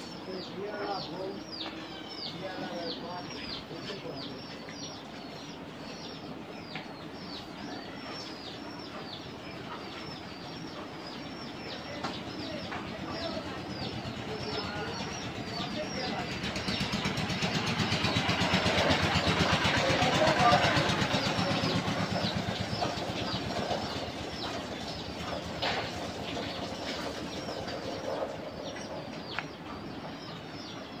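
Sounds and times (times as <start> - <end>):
birds chirping: 0.0 - 31.0
vehicle engine passing by: 15.0 - 24.4.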